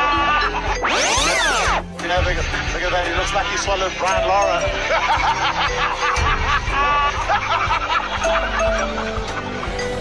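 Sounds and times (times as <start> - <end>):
background music with held notes: 0.0 - 10.0
people snickering: 4.8 - 9.7.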